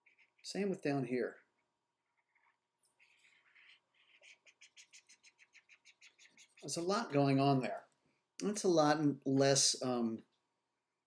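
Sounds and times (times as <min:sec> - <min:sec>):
stylus scratching on tablet screen: 0:02.1 - 0:06.6.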